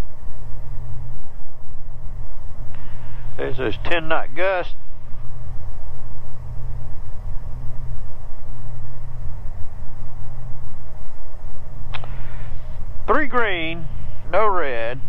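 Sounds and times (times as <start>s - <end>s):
propeller plane engines droning: 0.0s - 15.0s.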